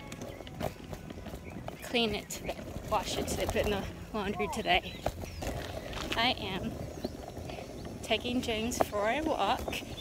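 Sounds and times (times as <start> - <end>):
footsteps walking: 0.0 - 10.0.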